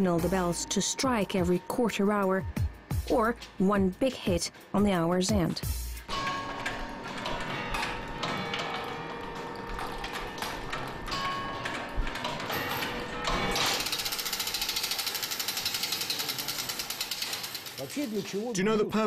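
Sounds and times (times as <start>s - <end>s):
background music: 0.0s - 19.0s
clock gear mechanism ticking: 5.8s - 18.5s
fast ratcheting clatter: 13.5s - 18.4s.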